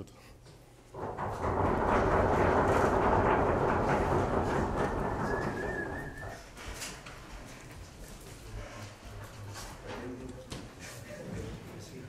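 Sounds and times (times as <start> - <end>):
audience applauding: 1.3 - 6.6.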